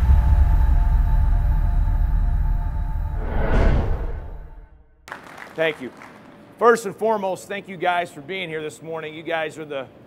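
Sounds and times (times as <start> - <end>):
music with deep sustained bass: 0.0 - 3.4.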